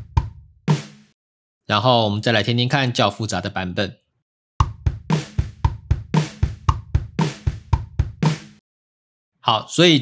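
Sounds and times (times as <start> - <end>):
drum kit pattern: 0.0 - 1.1, 4.6 - 8.6.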